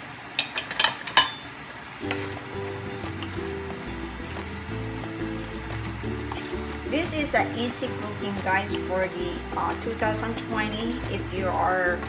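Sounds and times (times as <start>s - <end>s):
vegetables sizzling in a wok: 1.0s - 12.0s
background music: 2.0s - 12.0s.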